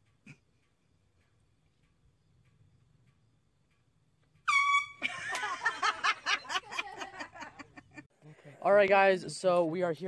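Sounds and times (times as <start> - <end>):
people laughing: 5.0 - 8.6
people talking: 8.3 - 10.0.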